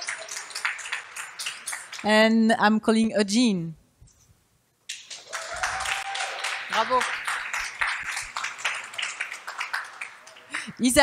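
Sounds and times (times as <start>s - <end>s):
audience applauding: 0.0s - 2.0s, 4.9s - 10.8s
crowd whoop: 5.2s - 6.8s.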